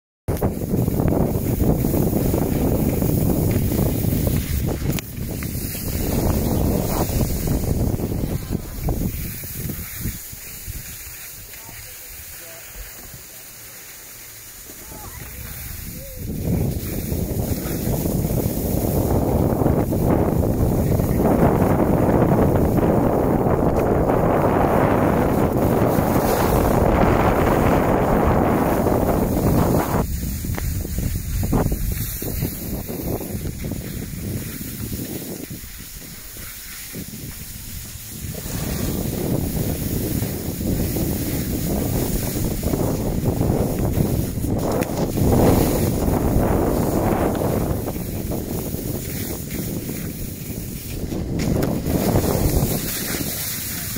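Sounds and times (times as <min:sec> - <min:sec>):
wind on microphone: 0:00.3 - 0:11.8, 0:14.8 - 0:53.9
skis sliding over snow: 0:00.3 - 0:53.9.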